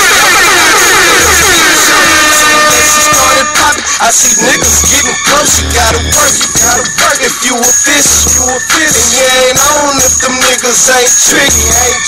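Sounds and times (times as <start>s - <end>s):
hip-hop beat with deep bass: 0.0s - 12.0s.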